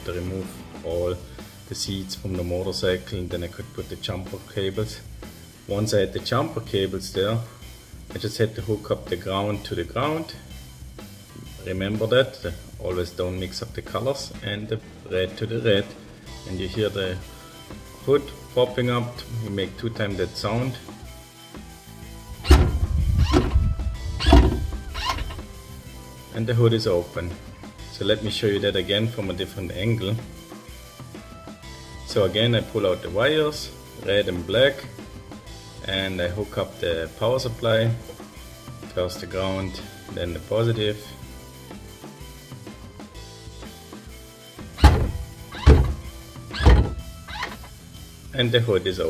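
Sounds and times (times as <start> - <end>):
background music: 0.0 - 49.0
hood latch whirr and clunk: 22.4 - 25.5, 44.8 - 47.7.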